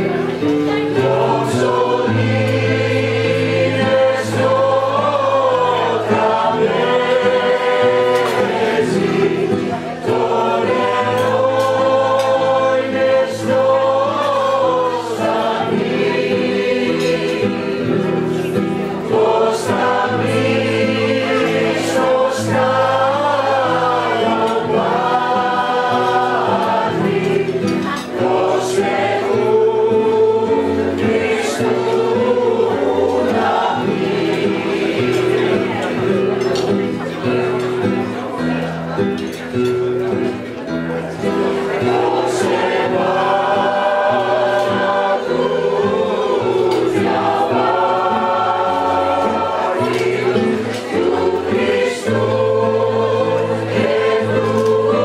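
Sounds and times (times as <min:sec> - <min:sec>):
acoustic guitar: 0:00.0 - 0:55.0
mixed choir singing in harmony: 0:00.0 - 0:55.0.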